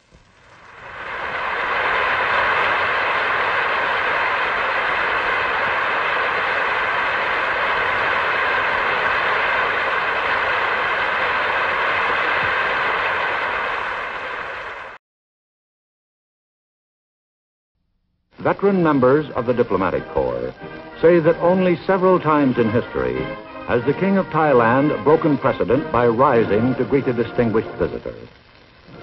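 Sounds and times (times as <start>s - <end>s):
audience applauding: 0.0s - 15.0s.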